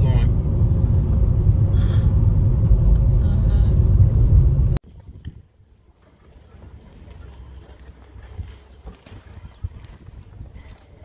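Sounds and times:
road and engine rumble in car: 0:00.0 - 0:04.8
quiet outdoor ambience: 0:00.0 - 0:11.0.

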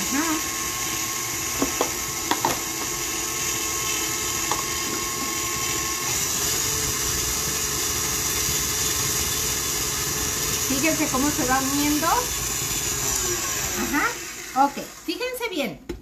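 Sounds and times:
stand mixer running: 0:00.0 - 0:15.2.

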